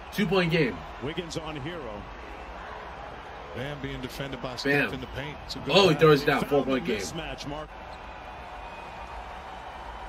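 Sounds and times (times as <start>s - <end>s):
basketball court ambience: 0.0s - 10.0s
man speaking: 0.2s - 0.8s, 4.6s - 7.2s.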